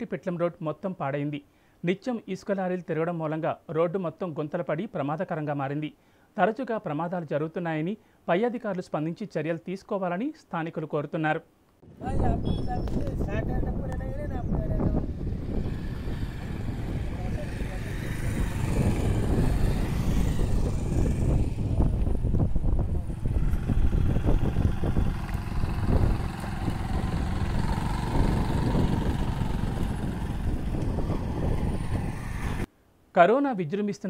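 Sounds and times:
wind on microphone: 11.8 - 32.7
people talking: 12.0 - 15.1, 17.1 - 18.6
vehicle engine running: 15.5 - 32.6.

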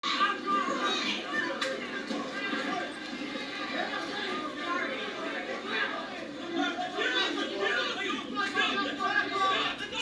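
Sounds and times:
crowd shouting and talking: 0.0 - 10.0.

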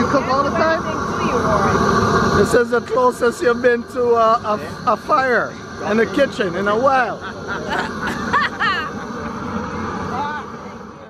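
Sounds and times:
people laughing: 6.7 - 10.1.

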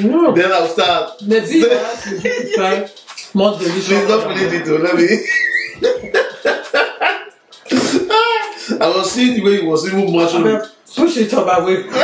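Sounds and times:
people making vocal sounds: 1.1 - 8.8
high wavering squeal: 3.7 - 7.5.

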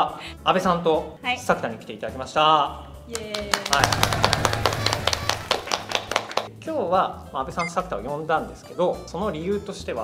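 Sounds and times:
people clapping: 3.1 - 6.5.

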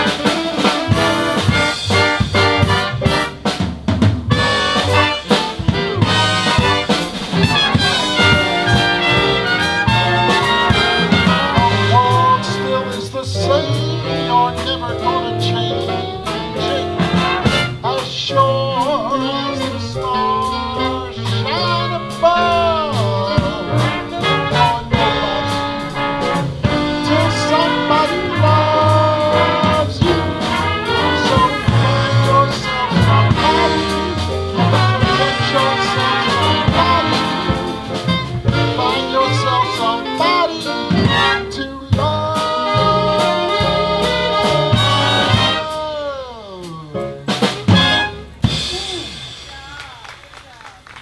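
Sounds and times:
swing big band playing: 0.0 - 51.0.

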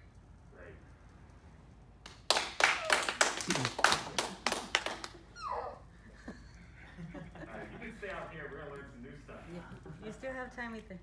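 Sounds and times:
hands clapping: 2.0 - 5.2
laughter: 6.0 - 8.0.

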